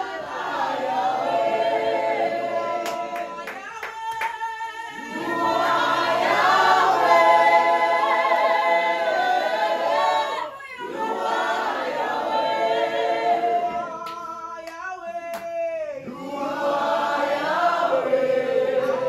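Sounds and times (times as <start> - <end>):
congregation singing: 0.0 - 19.0.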